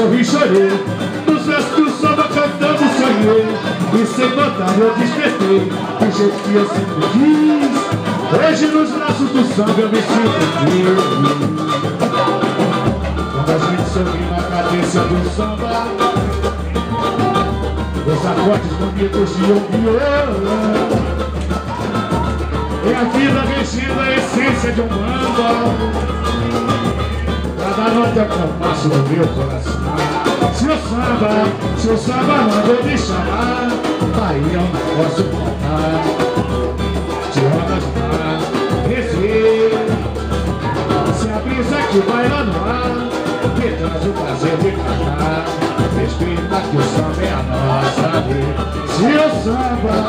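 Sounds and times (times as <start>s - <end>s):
person singing: 0.0s - 50.0s
samba band playing: 0.0s - 50.0s.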